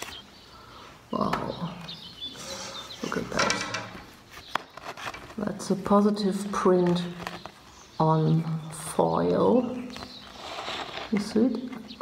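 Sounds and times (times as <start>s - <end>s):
cardboard and paper scraping rustling: 4.0s - 7.7s, 9.9s - 11.9s.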